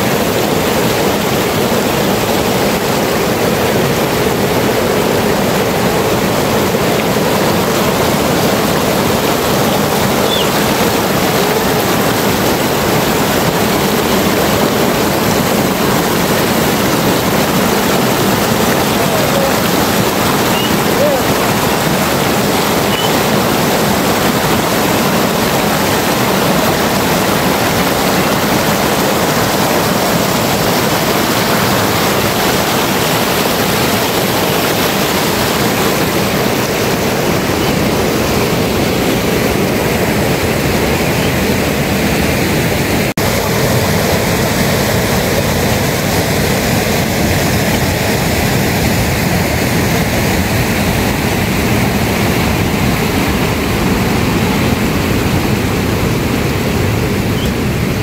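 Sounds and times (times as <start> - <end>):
rushing mountain stream: 0.0 - 58.0.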